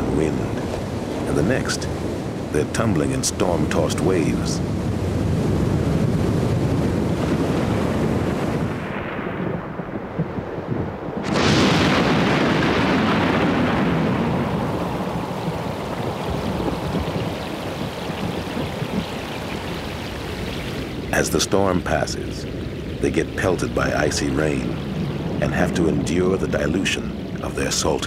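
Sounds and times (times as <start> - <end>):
rough water roaring: 0.0 - 9.2, 11.2 - 28.0.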